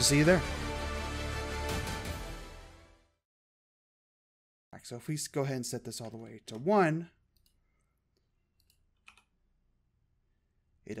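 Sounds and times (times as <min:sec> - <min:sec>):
computer mouse clicks: 0:08.2 - 0:09.3.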